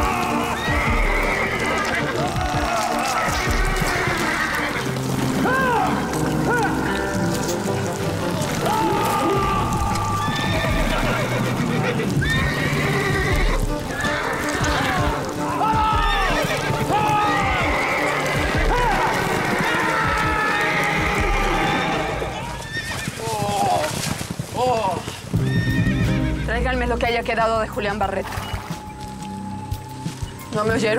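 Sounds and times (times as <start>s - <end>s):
dramatic orchestral music: 0.0s - 22.8s, 25.3s - 30.9s
horse whinnying: 0.0s - 26.6s
hoofbeats: 0.0s - 30.9s.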